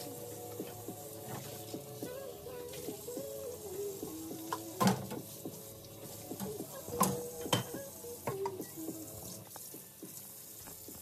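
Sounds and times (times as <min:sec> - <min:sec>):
faucet water splashing: 0:00.0 - 0:11.0
dishes and utensils clinking: 0:06.4 - 0:08.6.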